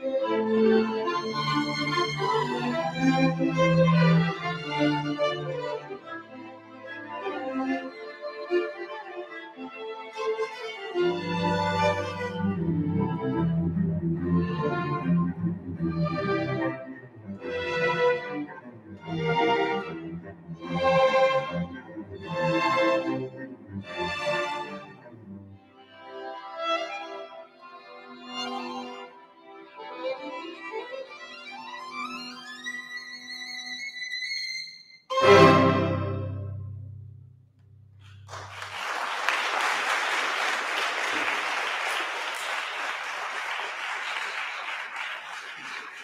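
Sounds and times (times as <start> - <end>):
cellos and double basses: 0.0 - 34.4, 35.1 - 38.7
violins: 0.0 - 37.1
string orchestra playing: 0.0 - 37.2
loud orchestral chord with deep bass: 11.3 - 17.0, 35.1 - 38.4.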